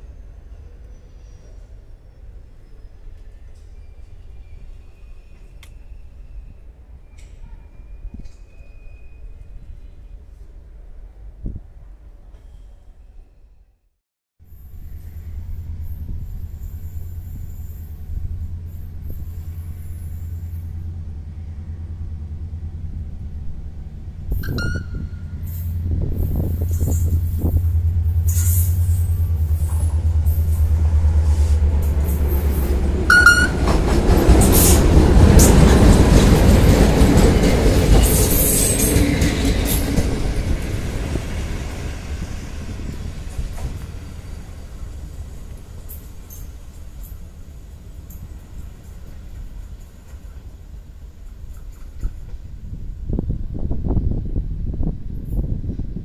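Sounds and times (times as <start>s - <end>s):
passenger train passing: 0.0s - 12.4s, 14.5s - 56.0s
short high squeaks: 24.3s - 27.6s.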